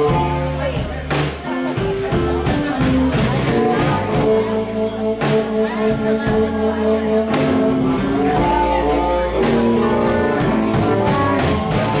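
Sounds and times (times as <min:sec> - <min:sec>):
drum and cymbal hits: 0:00.0 - 0:12.0
electric guitar: 0:00.0 - 0:12.0.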